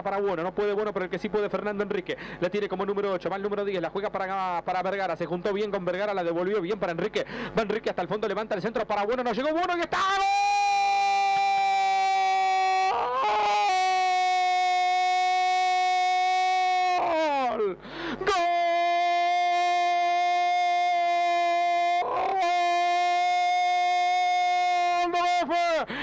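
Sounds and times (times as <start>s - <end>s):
man breathing: 2.2s - 2.4s, 7.2s - 7.6s, 17.8s - 18.2s
commentator's long goal cry: 10.0s - 25.9s.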